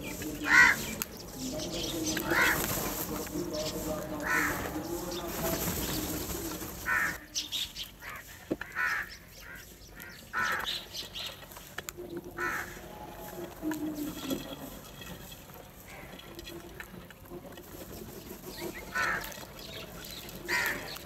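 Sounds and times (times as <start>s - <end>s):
crows cawing: 0.0s - 7.3s, 8.0s - 11.1s, 12.3s - 14.7s, 15.8s - 16.4s, 18.7s - 21.0s.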